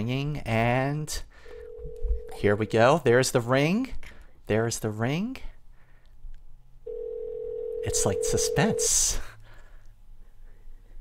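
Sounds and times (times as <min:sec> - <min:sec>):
telephone ringback tone: 0:01.5 - 0:02.7, 0:06.9 - 0:09.0.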